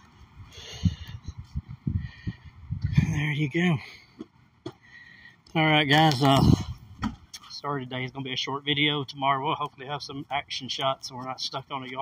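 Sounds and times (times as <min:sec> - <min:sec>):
wind buffeting microphone: 0:00.4 - 0:03.3, 0:06.4 - 0:07.2.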